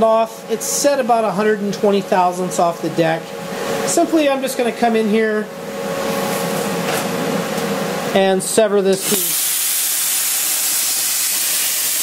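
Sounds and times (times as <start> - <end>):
machine humming: 0.0 - 12.0
compressed air hissing: 9.0 - 12.0.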